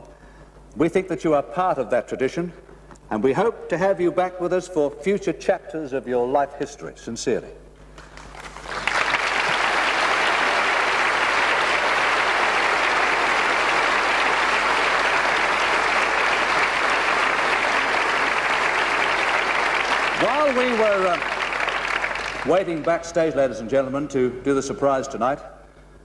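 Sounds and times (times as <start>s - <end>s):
large audience applauding: 8.0s - 23.0s
man speaking: 20.2s - 21.3s, 22.4s - 25.6s.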